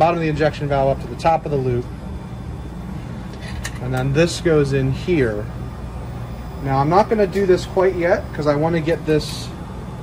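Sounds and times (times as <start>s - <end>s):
machinery and ventilation hum: 0.0s - 10.0s.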